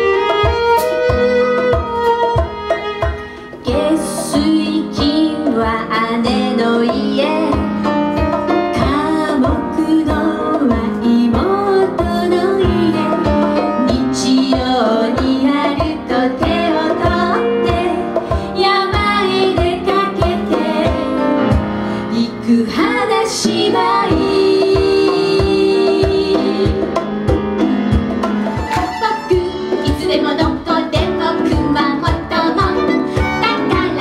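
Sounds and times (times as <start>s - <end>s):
violin: 0.0s - 5.6s, 28.2s - 34.0s
percussion beat: 0.0s - 21.8s, 22.7s - 34.0s
piano: 0.0s - 34.0s
women singing together: 3.7s - 7.6s, 13.9s - 21.4s, 22.2s - 26.9s, 29.8s - 34.0s.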